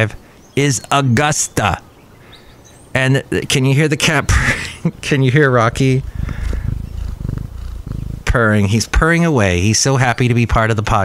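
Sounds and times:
cat purring: 4.0 - 9.0.

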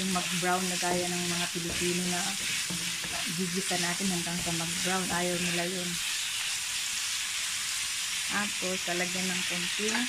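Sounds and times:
meat sizzling in a wok: 0.0 - 10.0.

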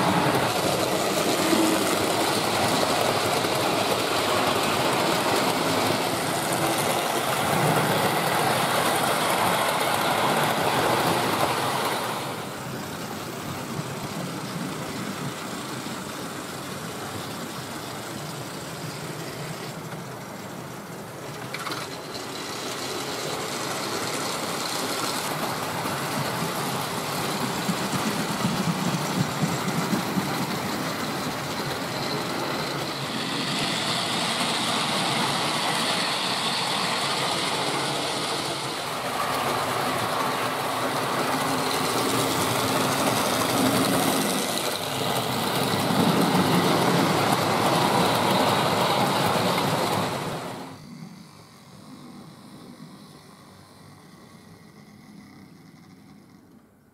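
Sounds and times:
model train wheels rattling: 0.0 - 50.8.

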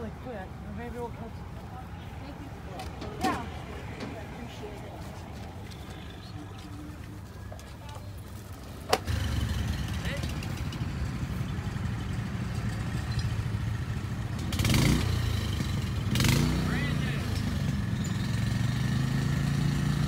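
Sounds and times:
engine running: 0.0 - 20.0.

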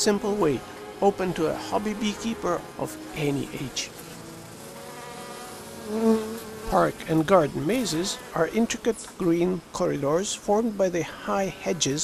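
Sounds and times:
honey bees buzzing: 0.0 - 12.0.

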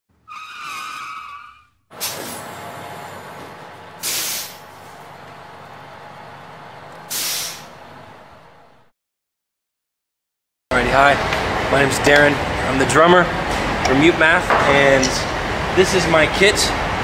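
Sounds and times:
air brake hisses: 2.0 - 2.6, 4.0 - 4.7, 7.1 - 7.8
vehicle engine running: 2.4 - 8.9.

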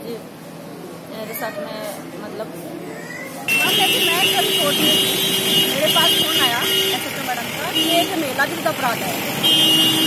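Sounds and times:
woman speaking: 3.5 - 5.1, 5.7 - 9.2.

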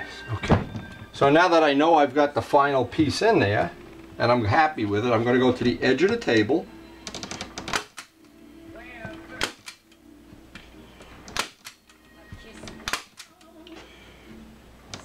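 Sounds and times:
staple gun snaps: 9.4 - 9.9, 11.3 - 11.9, 12.8 - 13.4.

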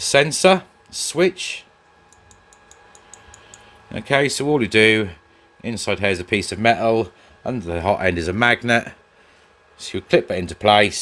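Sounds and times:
microswitch ticking: 2.1 - 3.7.

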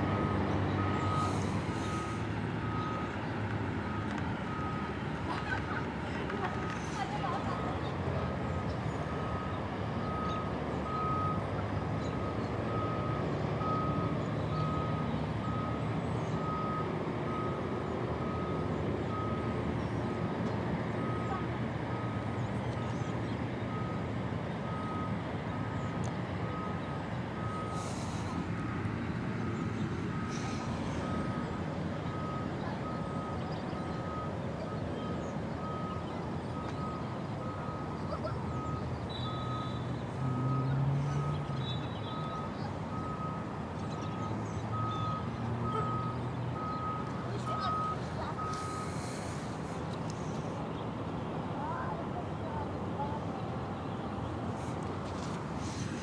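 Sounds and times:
reversing alarm beeping: 0.0 - 5.0, 9.1 - 19.6, 23.7 - 25.8, 26.4 - 49.5
low engine rumble: 0.0 - 56.0.

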